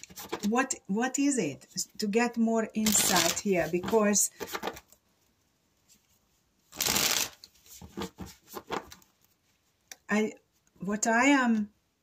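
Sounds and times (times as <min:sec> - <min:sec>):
cards shuffling: 0:02.8 - 0:04.9, 0:06.7 - 0:09.2.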